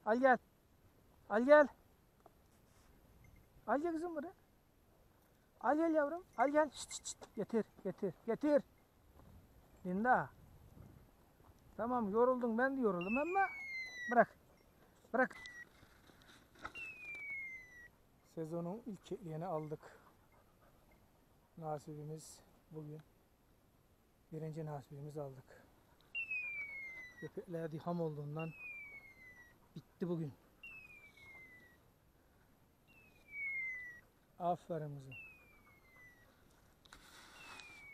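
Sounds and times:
high whistle gliding down: 0:37.3 - 0:37.9.

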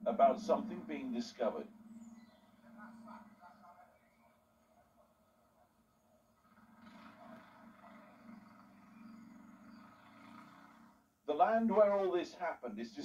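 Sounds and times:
muffled television murmur: 0:00.0 - 0:11.0
distant men's voices: 0:00.0 - 0:13.0.

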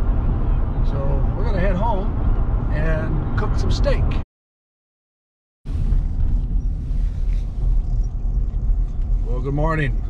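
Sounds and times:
vehicle engine and road noise: 0:00.0 - 0:04.2, 0:05.7 - 0:10.0.

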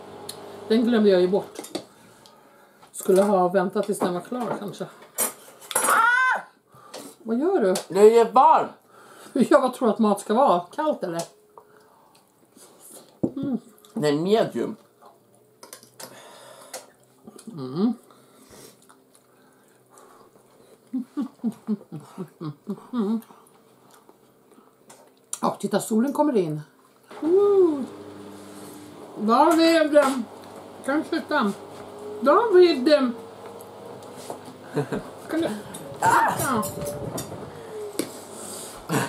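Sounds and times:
person exclaiming: 0:05.8 - 0:06.5, 0:27.2 - 0:27.9, 0:35.3 - 0:36.7
person humming or giggling: 0:13.2 - 0:13.7, 0:17.3 - 0:18.0, 0:20.8 - 0:23.4, 0:27.2 - 0:27.9, 0:34.6 - 0:36.8.

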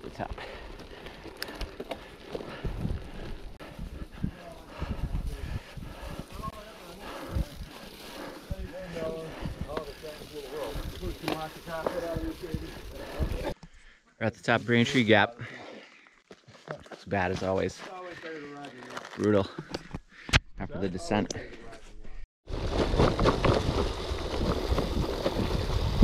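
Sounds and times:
bike bumping and rattling: 0:00.0 - 0:13.6, 0:22.6 - 0:26.0
bike tyres crunching over leaves: 0:00.0 - 0:13.6, 0:22.5 - 0:26.0.

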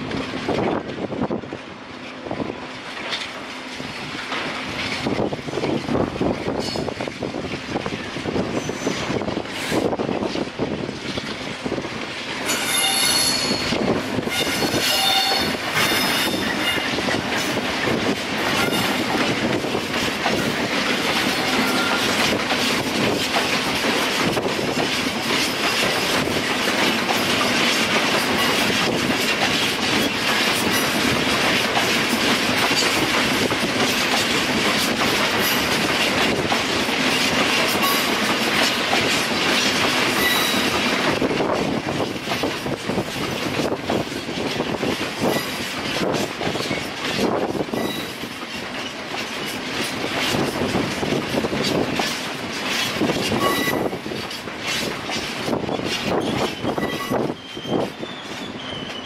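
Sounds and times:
diesel locomotive passing: 0:00.0 - 0:59.0
freight wagons clattering over rails: 0:02.9 - 0:59.0.

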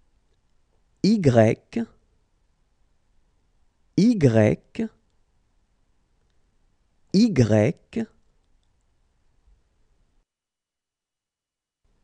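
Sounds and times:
person speaking letter name: 0:01.0 - 0:02.0, 0:04.0 - 0:05.0, 0:07.2 - 0:08.2.

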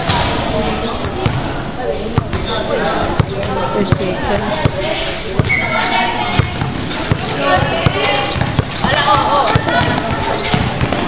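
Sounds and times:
basketball bouncing on court: 0:01.0 - 0:01.5, 0:02.2 - 0:11.0
crowd and players shouting: 0:02.3 - 0:11.0.

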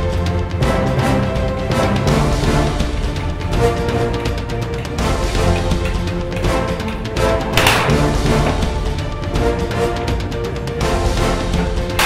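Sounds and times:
dramatic film score music: 0:00.0 - 0:12.0
pistol shot: 0:07.5 - 0:08.7.

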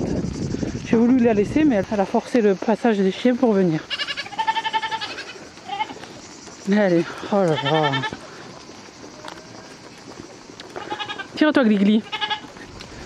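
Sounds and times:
goats bleating: 0:03.8 - 0:06.2, 0:07.0 - 0:09.4, 0:10.6 - 0:13.0.

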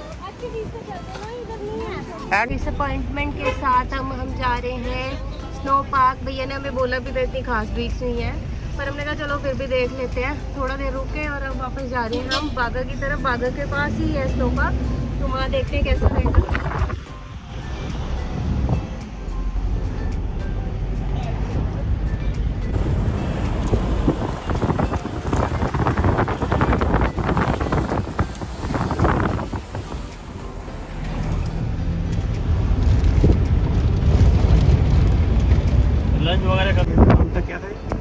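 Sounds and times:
background music: 0:00.0 - 0:38.0
car cabin road rumble: 0:12.0 - 0:19.1, 0:19.7 - 0:38.0.

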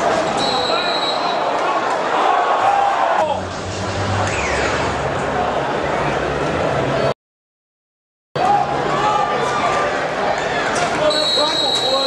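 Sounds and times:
indoor arena noise: 0:00.0 - 0:07.2, 0:08.4 - 0:12.0
referee's whistle: 0:00.4 - 0:01.4, 0:11.1 - 0:12.0
spectators talking: 0:08.4 - 0:12.0.

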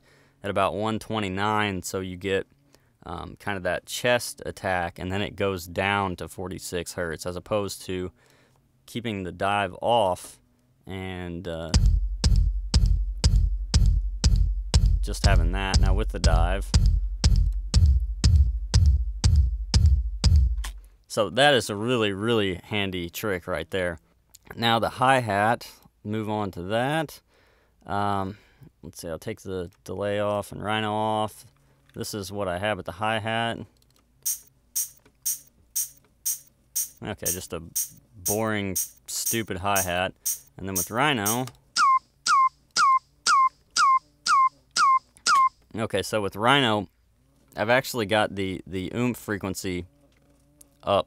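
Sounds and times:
deep electronic kick drum beat: 0:11.7 - 0:20.8, 0:34.3 - 0:45.0
programmed hi-hat ticks: 0:11.7 - 0:20.8, 0:34.2 - 0:45.6.

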